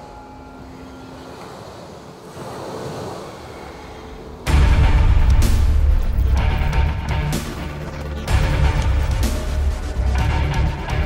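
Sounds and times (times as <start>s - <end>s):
wind: 0.0s - 4.6s
ocean surf washing ashore: 0.0s - 6.0s.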